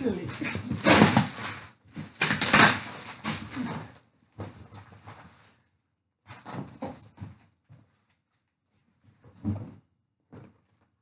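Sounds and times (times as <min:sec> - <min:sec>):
packing tape tearing: 0:00.7 - 0:03.7.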